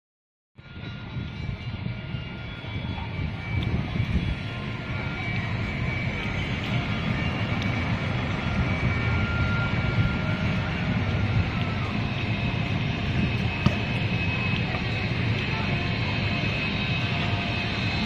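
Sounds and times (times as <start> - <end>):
traffic rumble: 1.9 - 18.0.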